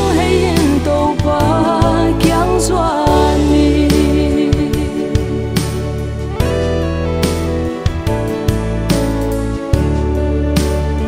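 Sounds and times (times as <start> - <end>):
woman singing with vibrato: 0.0 - 7.0
bass and keyboard backing track: 0.0 - 11.0.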